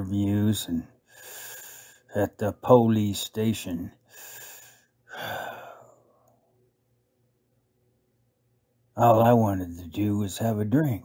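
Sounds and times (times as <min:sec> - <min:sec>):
man breathing: 0:01.0 - 0:02.1, 0:04.0 - 0:06.3.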